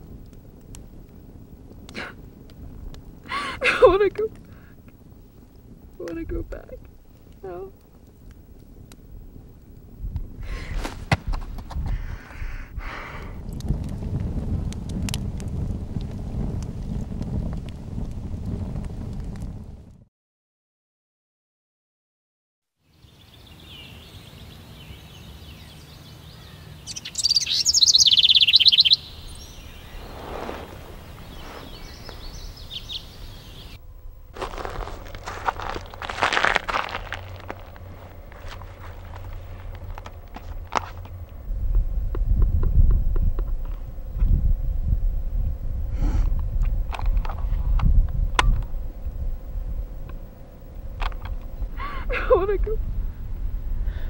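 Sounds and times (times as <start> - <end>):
fire crackling: 0.0 - 20.1, 26.8 - 54.0
birds calling: 23.1 - 33.8.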